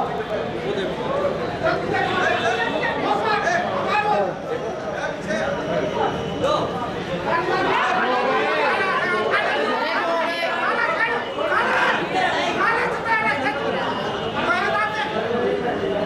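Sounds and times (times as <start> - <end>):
crowd babble: 0.0 - 16.0.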